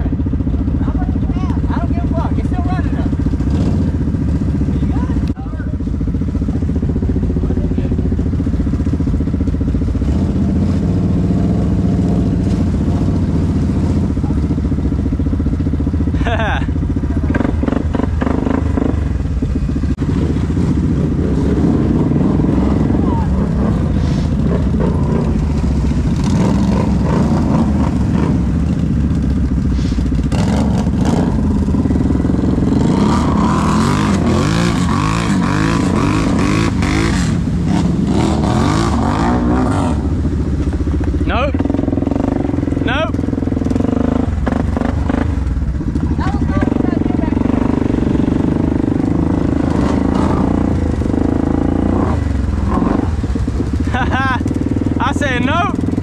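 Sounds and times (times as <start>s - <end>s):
atv engines idling and revving: 0.0s - 56.0s.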